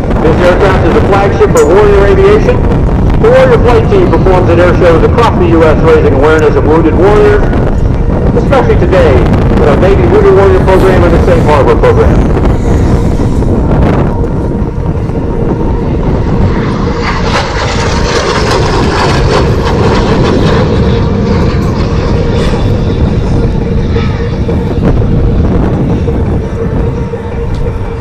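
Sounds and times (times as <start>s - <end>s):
jet engines running: 0.0s - 28.0s.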